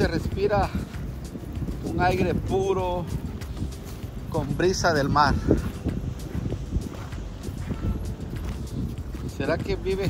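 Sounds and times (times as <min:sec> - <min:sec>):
footsteps on rock and gravel: 0:00.0 - 0:10.0
wind buffeting microphone: 0:00.0 - 0:10.0.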